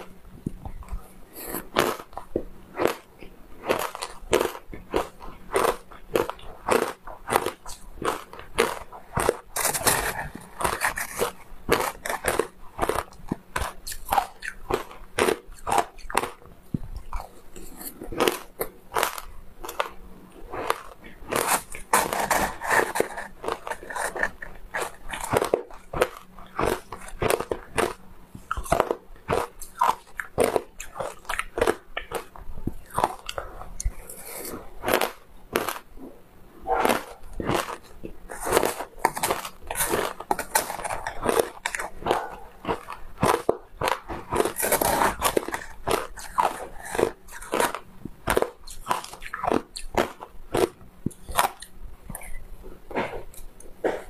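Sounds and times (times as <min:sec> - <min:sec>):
crunching shaved ice: 0:00.0 - 0:36.0, 0:36.8 - 0:54.0.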